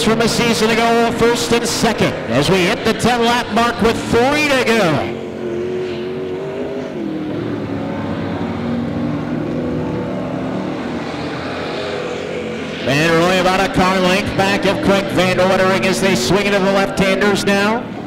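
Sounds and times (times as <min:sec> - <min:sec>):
race car engines: 0:00.0 - 0:18.0.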